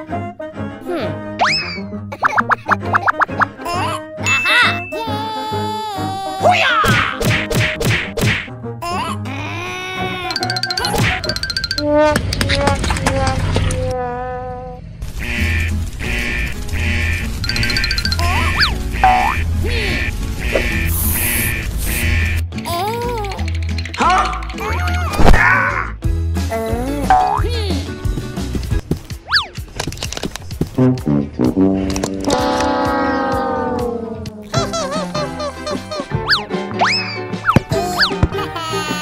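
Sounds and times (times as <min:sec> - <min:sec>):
playful background music: 0:00.0 - 0:14.0, 0:15.2 - 0:39.0
cartoon whack: 0:06.6 - 0:08.5
cartoon boing: 0:32.3 - 0:34.0.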